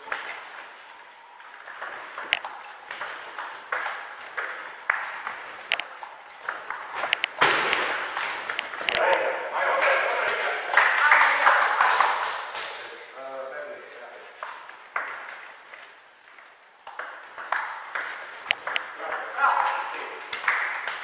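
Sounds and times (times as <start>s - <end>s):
table tennis ball clicking: 1.7s - 9.1s, 16.8s - 21.0s
men shouting: 19.2s - 20.2s.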